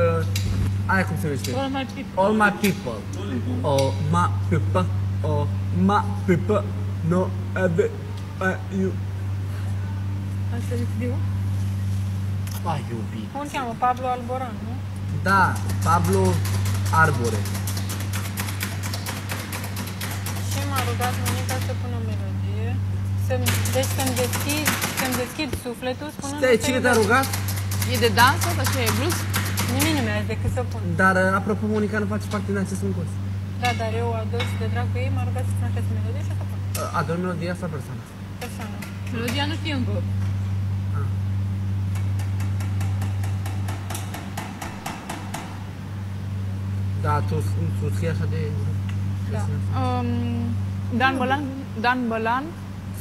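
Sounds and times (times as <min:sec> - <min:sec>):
low hum: 0:00.0 - 0:53.0
rapid typing on a keyboard: 0:15.5 - 0:21.8, 0:23.5 - 0:25.4, 0:26.8 - 0:30.0.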